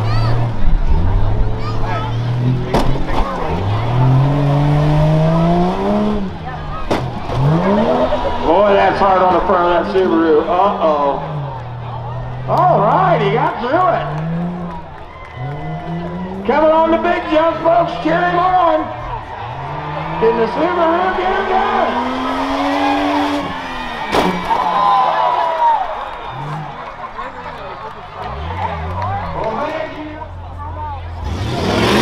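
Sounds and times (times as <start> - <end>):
truck engine revving hard: 0.0 - 32.0.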